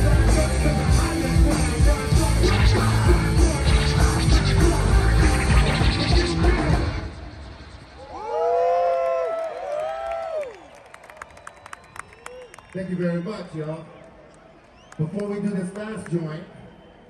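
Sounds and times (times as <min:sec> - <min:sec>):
heavy rock band playing loudly: 0:00.0 - 0:07.2
audience whooping cheers: 0:08.0 - 0:15.2
people clapping: 0:08.8 - 0:16.4.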